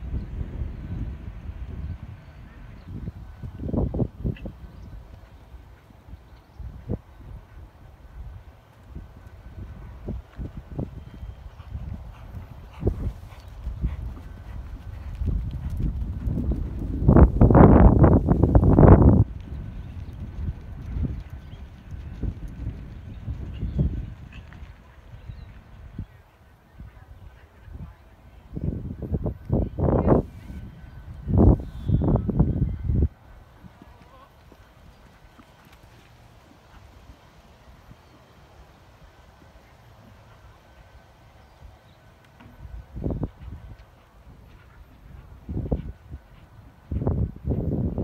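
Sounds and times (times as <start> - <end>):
horse hoofbeats on dirt: 8.7 - 25.8, 33.4 - 48.0.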